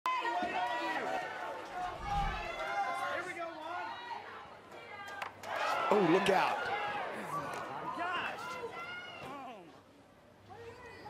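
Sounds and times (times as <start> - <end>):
spectators chattering: 0.1 - 11.0.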